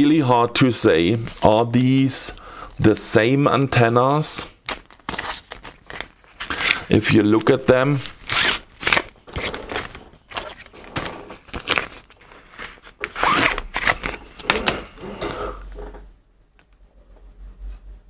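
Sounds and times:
antennas rustling and crinkling: 4.6 - 16.2.

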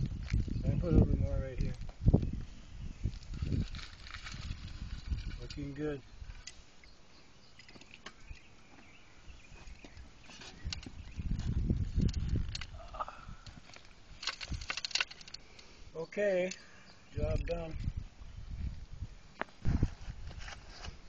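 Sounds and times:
soil crumbling and rustling: 0.0 - 6.7, 7.5 - 15.6.

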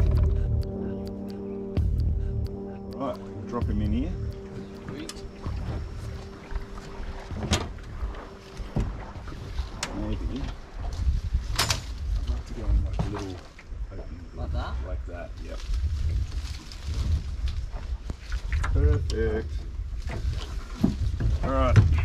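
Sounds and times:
indistinct voices: 0.0 - 6.8
steady hum: 0.0 - 10.8.

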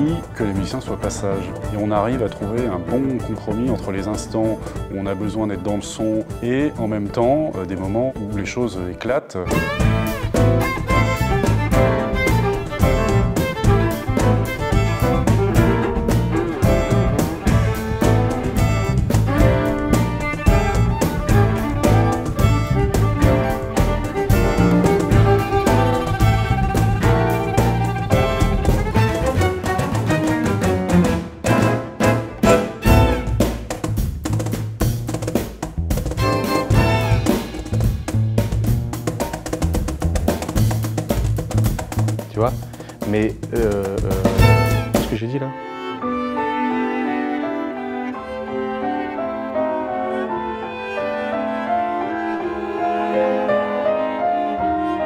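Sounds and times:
bowed violin and viola: 9.4 - 33.6, 36.1 - 38.0, 43.5 - 55.0
drums and percussion hits: 9.5 - 45.2.

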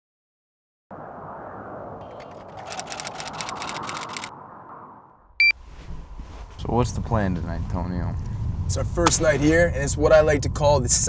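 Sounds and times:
rapid sharp clicks: 2.3 - 4.3.

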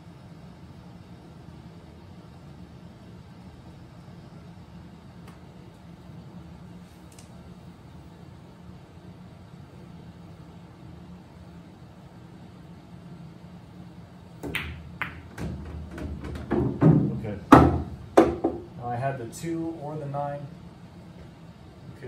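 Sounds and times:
low room hum: 0.0 - 22.0
cue striking ball: 14.4 - 18.7
pool balls clacking: 14.4 - 18.7.

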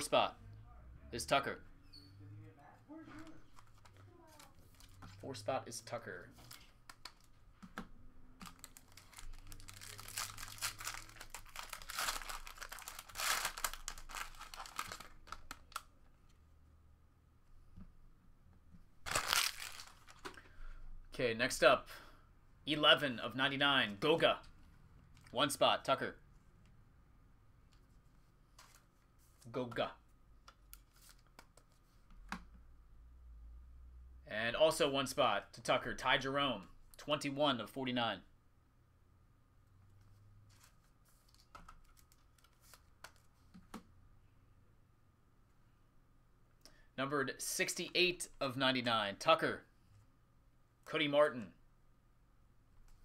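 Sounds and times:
foil wrapper crinkling and tearing: 8.4 - 15.8, 19.1 - 20.2.

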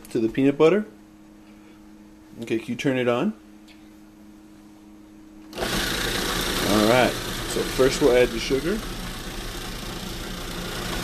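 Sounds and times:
food processor grinding: 5.5 - 11.0.

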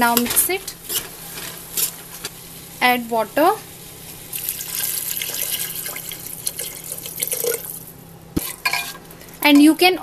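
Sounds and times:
water pouring into pot: 4.3 - 7.8.

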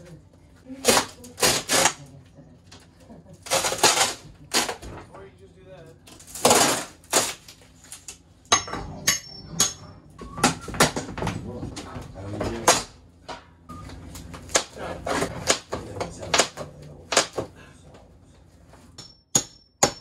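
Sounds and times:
wall paneling cracking and tearing: 0.8 - 2.0, 3.4 - 4.8, 6.1 - 8.2
hammer striking pry bar: 19.0 - 20.0.

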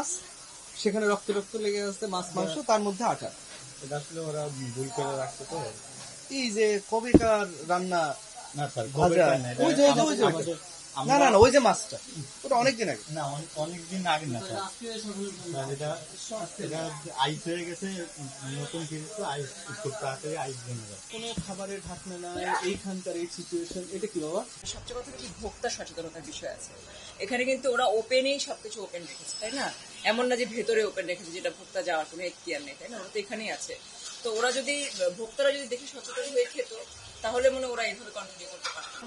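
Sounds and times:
faint background hiss: 0.0 - 39.0
men talking: 2.2 - 24.6.

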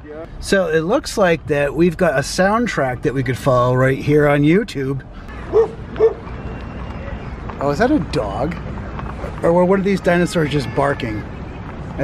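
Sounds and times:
dog barking: 5.5 - 6.2.

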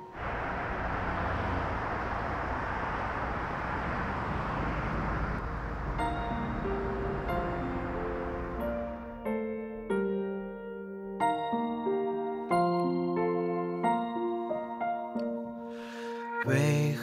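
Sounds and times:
city traffic passing: 0.0 - 9.9.

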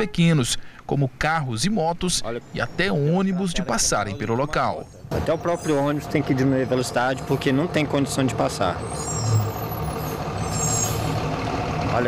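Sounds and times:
bus engine running: 2.3 - 12.0.

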